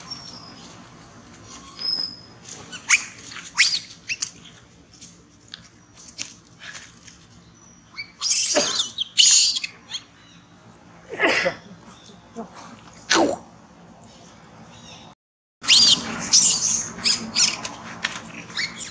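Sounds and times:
monkeys squeaking and chirping: 0.0 - 4.8, 7.3 - 10.6, 15.6 - 18.9
loud harsh monkey calls: 1.4 - 4.6, 7.8 - 11.8, 15.6 - 18.9.

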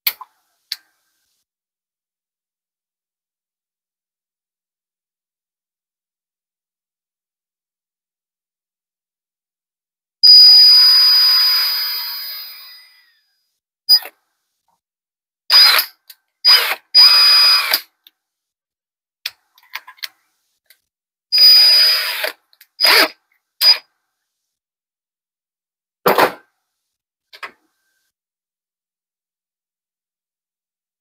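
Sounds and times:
cordless drill whining: 10.4 - 13.2, 15.5 - 15.9, 16.5 - 17.9, 21.4 - 23.8.

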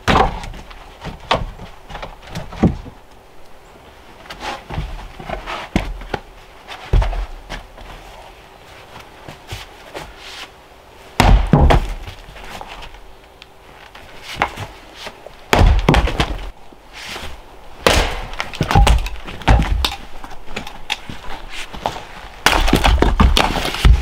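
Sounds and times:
wood pieces knocking and clattering: 17.9 - 24.0.

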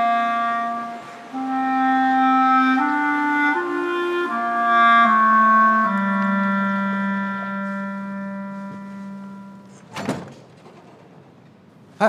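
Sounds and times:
woodwind melody: 0.0 - 10.1.

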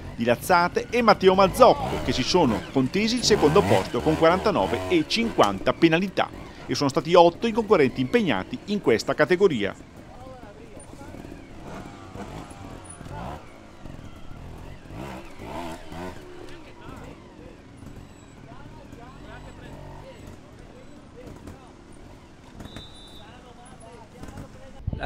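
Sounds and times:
indistinct voices: 0.0 - 21.9
motorcycle engine revving: 0.0 - 24.8.

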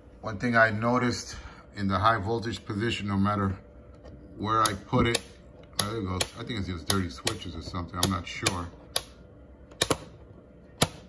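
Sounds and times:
faint fan: 0.0 - 11.0
switch clicks: 4.6 - 10.1.

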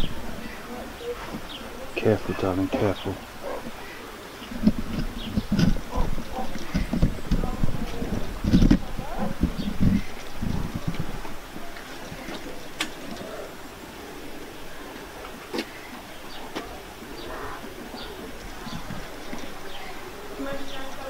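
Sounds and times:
dove cooing: 0.0 - 21.0.

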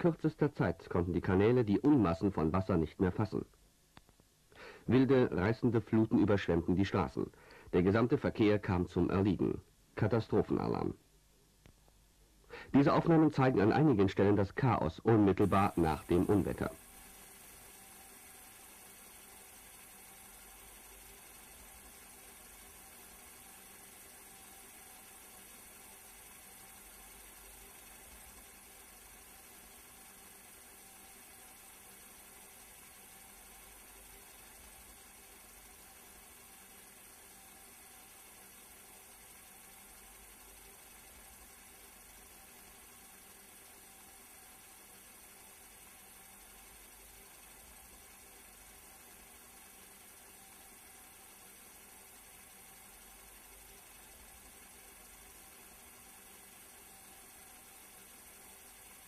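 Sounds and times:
faint steady hiss: 0.0 - 59.0.

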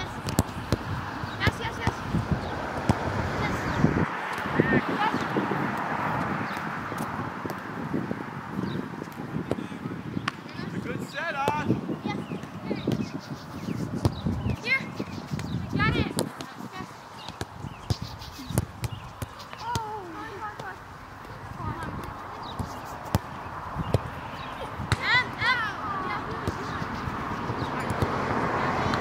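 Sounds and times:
ball kick thud: 0.2 - 2.0
players shouting: 24.5 - 29.0.

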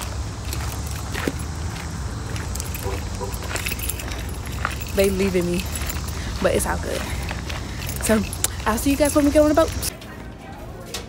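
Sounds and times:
phone handling clicks and jingling: 2.5 - 6.4, 7.7 - 9.9
sharp ticks: 7.8 - 9.9.

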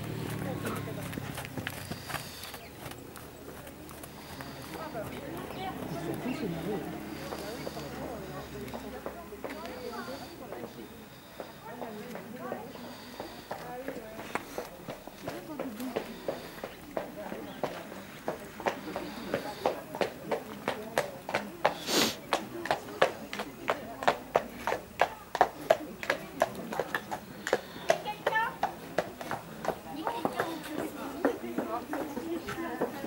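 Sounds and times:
horse hoofbeats trotting: 0.0 - 33.0.

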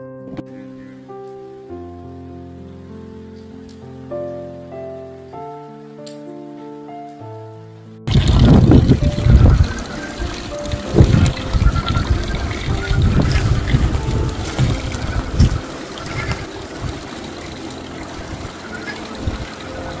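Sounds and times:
background music: 0.0 - 20.0
water trickling into pond: 8.1 - 20.0
wind buffeting microphone: 8.1 - 20.0.

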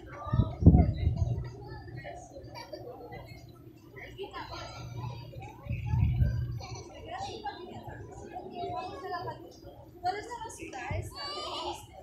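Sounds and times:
chatter of passers-by: 0.0 - 12.0
children's voices: 0.0 - 12.0.

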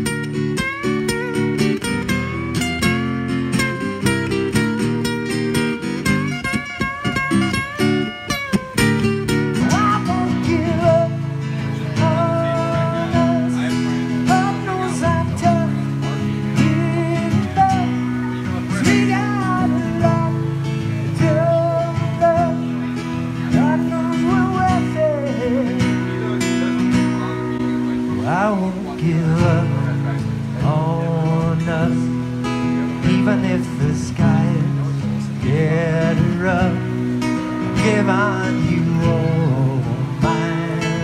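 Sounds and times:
acoustic guitar picked and strummed: 0.0 - 41.0
gliding guitar melody: 0.0 - 41.0.

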